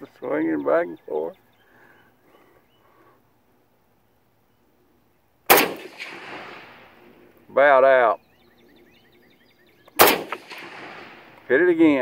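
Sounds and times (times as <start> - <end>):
rifle shot: 5.5 - 7.1, 10.0 - 11.5
echoing crack: 5.5 - 7.2, 10.0 - 11.6.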